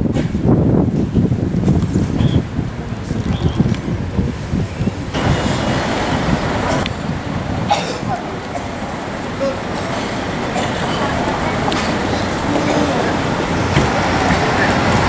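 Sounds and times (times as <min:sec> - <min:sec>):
street traffic going by: 0:00.0 - 0:15.0
wind buffeting microphone: 0:00.0 - 0:15.0
faint voices: 0:02.2 - 0:15.0.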